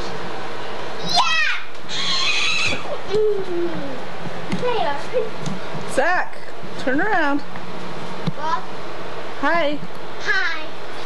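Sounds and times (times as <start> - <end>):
young child squealing: 1.0 - 3.9.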